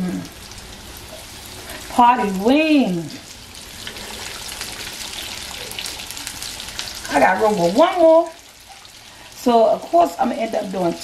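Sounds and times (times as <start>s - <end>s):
chicken wings sizzling in hot oil: 0.0s - 11.0s.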